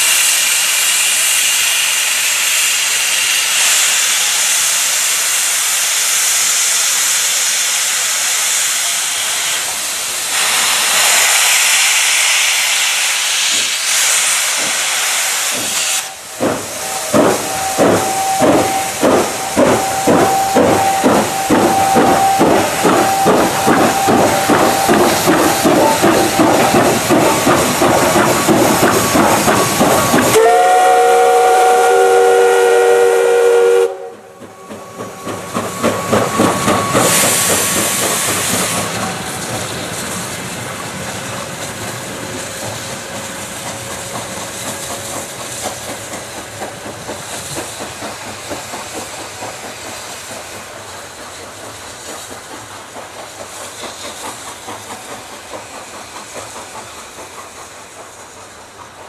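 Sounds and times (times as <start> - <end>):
steam hissing: 0.0 - 59.0
steam locomotive exhaust beats: 0.0 - 59.0.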